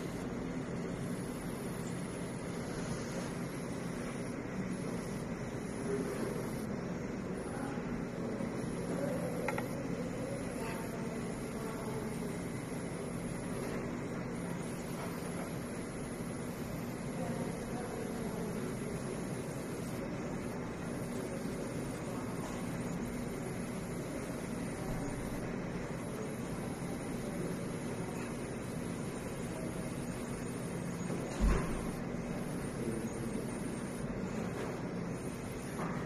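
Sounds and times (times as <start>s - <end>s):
coffee machinery hum and hiss: 0.0s - 36.0s.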